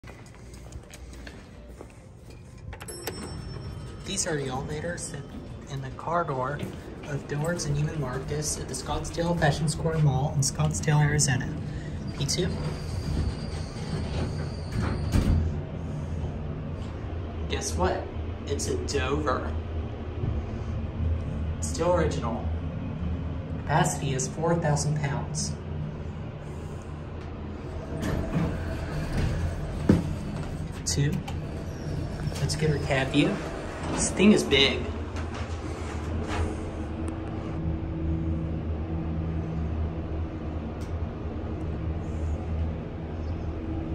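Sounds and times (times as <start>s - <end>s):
low steady hum: 0.0s - 13.3s, 14.8s - 43.9s
elevator doors sliding shut: 2.5s - 17.2s, 26.8s - 37.6s
high elevator ding: 2.6s - 11.3s.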